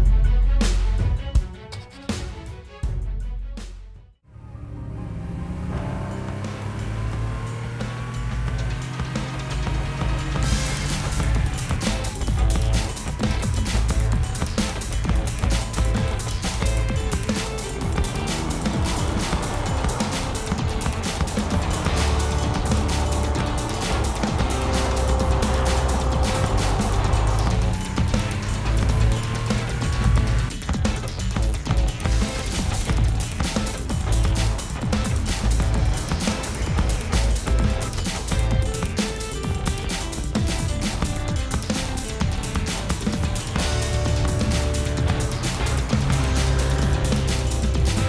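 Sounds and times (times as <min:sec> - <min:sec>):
soundtrack music with steady beat: 0:00.0 - 0:48.0
car driving past: 0:04.3 - 0:30.5.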